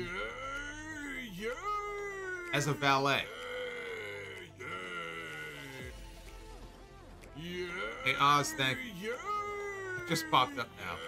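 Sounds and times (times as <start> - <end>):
music: 0.0 - 11.0
man shouting: 7.4 - 11.0.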